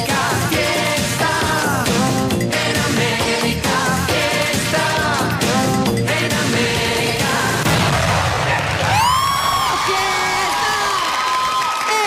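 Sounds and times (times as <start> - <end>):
dance music: 0.0 - 7.6
crowd cheering and whooping: 8.5 - 12.0.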